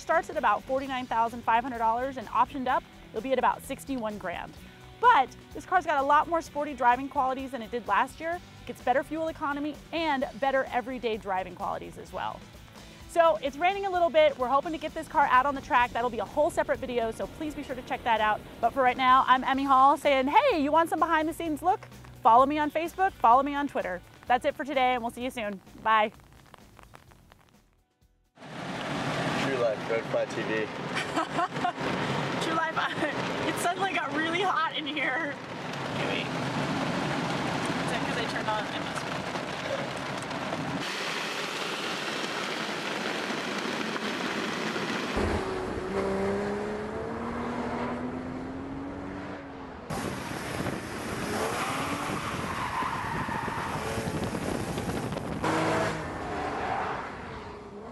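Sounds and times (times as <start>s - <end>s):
heavy rain on a car: 28.4s - 45.4s.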